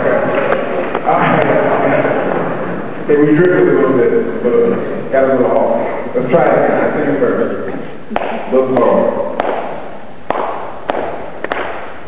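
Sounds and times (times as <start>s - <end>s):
man speaking: 0.0s - 9.4s
sharp hand claps: 8.1s - 12.0s.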